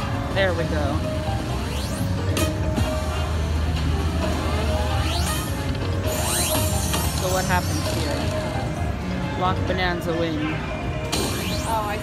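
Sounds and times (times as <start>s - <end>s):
low casino hum: 0.0s - 12.0s
slot machine game music: 0.0s - 12.0s.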